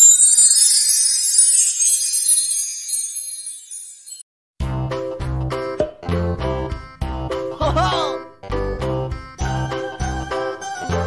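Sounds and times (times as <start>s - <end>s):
tinkling bell-like jingle: 0.0s - 4.3s.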